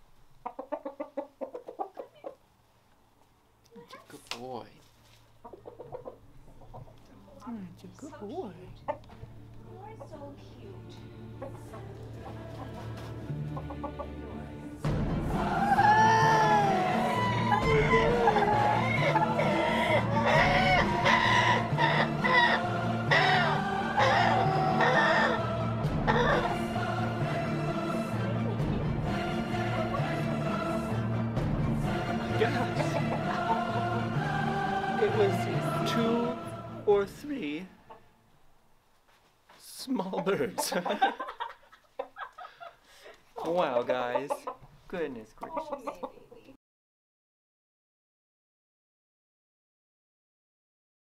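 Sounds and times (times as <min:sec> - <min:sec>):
background music with bass: 0:11.1 - 0:37.0
rooster alarm clucking: 0:16.7 - 0:25.5.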